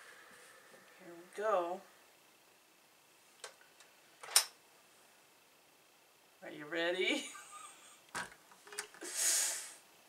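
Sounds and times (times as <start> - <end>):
steam iron hiss: 9.0 - 9.9.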